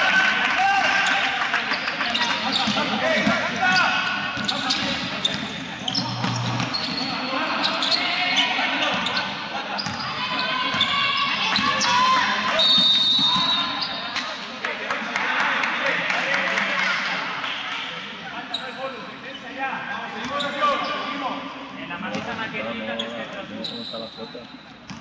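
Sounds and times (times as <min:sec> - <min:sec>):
voices echoing in hall: 0:00.0 - 0:25.0
basketball bouncing on court floor: 0:02.5 - 0:07.0, 0:09.8 - 0:10.0.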